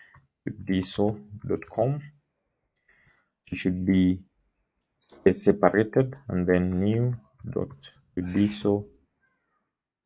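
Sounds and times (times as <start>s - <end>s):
man speaking drawn-out syllables: 5.2s - 8.9s.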